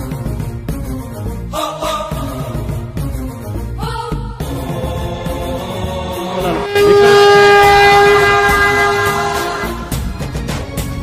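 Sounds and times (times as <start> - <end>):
background music: 0.0 - 11.0
steady horn-like tone: 6.4 - 10.1.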